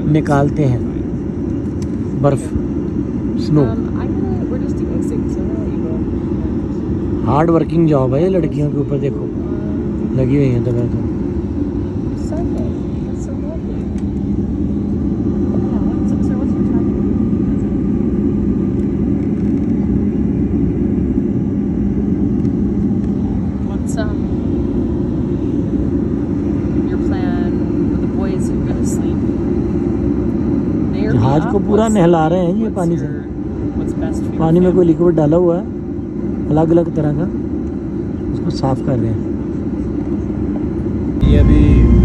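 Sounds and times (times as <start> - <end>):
airliner cabin drone: 0.0 - 42.0.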